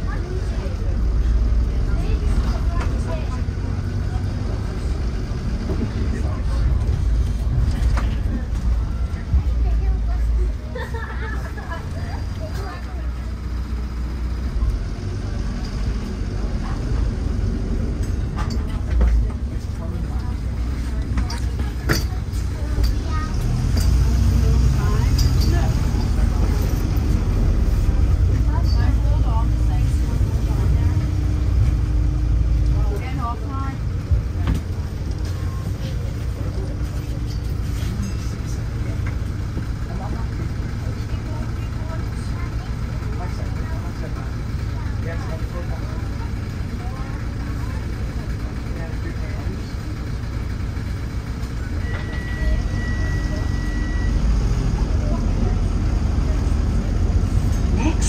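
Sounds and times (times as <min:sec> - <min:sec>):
bus diesel engine and road rumble: 0:00.0 - 0:58.0
passengers talking: 0:00.0 - 0:58.0.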